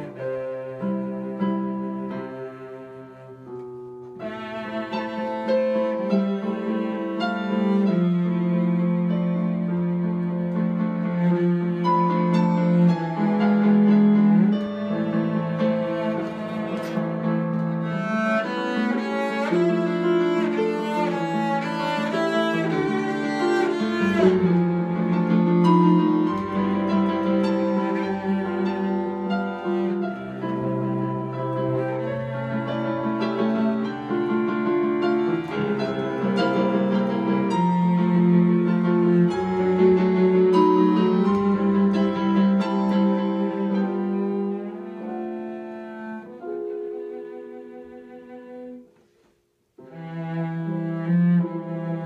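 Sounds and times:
digital keyboard piano accompaniment: 0.0 - 45.6
cello bowed notes: 0.0 - 49.0, 49.8 - 52.0.

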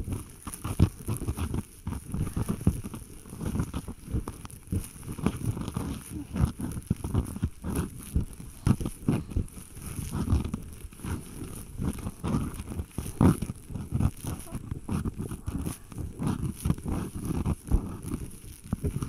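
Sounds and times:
ear pick scraping inside ear: 0.0 - 19.0.

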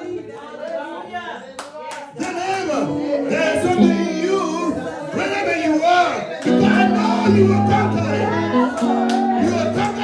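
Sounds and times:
hands clapping: 1.6 - 2.7, 6.3 - 7.0, 8.6 - 10.0.

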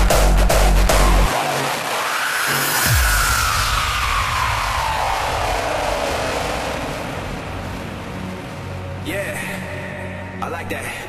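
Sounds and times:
wash of noise: 1.0 - 10.4.

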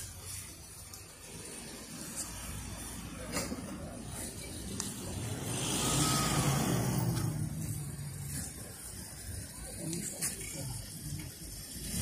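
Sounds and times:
vehicle passing by: 4.8 - 8.5.

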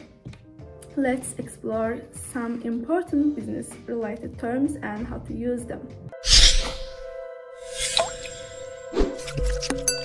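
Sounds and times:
whoosh: 6.2 - 7.1
short rising bloop: 7.7 - 9.1.

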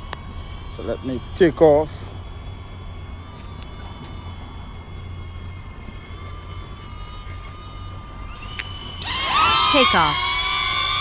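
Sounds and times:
faint thin whine: 0.0 - 11.0
low outdoor rumble: 0.0 - 11.0.

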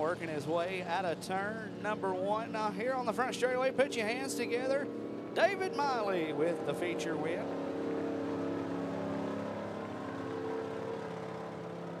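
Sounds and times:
race car engine running steadily: 0.0 - 12.0.

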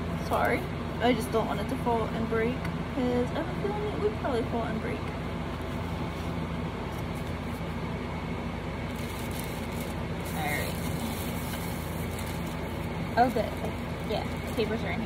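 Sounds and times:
low room hum: 0.0 - 15.0
shopping bag rustling: 8.9 - 15.0.

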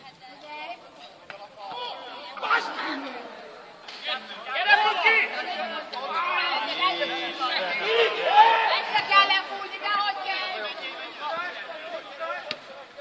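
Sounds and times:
men chattering and calling out: 1.0 - 13.0.

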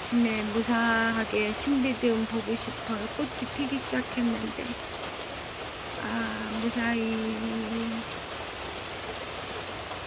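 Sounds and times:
steady rain: 0.0 - 10.0.

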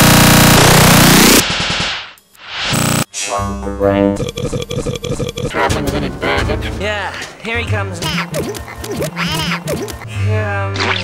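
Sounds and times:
rapid rattling stutter: 0.0 - 2.1, 8.0 - 10.0
distorted sweeping noise blast: 0.0 - 3.4.

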